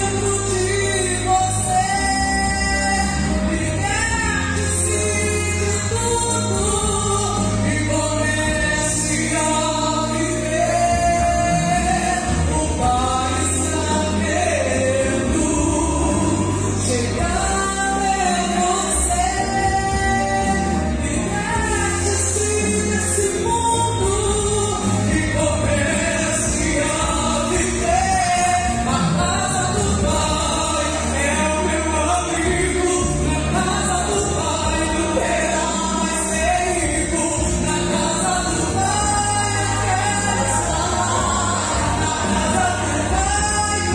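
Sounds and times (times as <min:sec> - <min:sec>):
instrumental accompaniment with bass: 0:00.0 - 0:43.9
woman singing gospel: 0:00.0 - 0:43.9.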